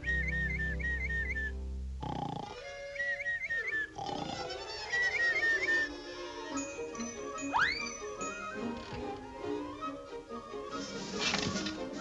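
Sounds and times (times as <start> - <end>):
warbling whistle notes: 0.0 - 1.6, 7.4 - 8.6
cartoon snoring: 2.0 - 2.6, 3.9 - 4.6.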